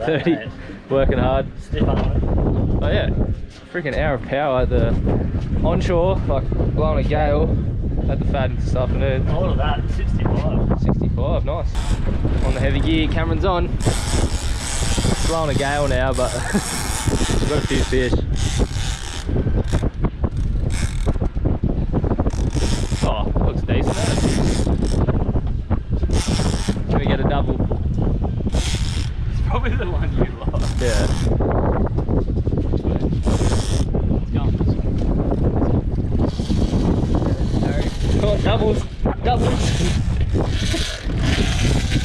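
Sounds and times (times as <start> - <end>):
man laughing: 0.0 - 0.8, 16.1 - 17.0
wind buffeting microphone: 0.0 - 42.0
fishing reel clicking: 11.8 - 12.6, 13.8 - 21.2, 22.3 - 23.1, 23.9 - 25.0, 26.1 - 26.8, 28.5 - 29.1, 30.6 - 31.3, 33.2 - 33.9.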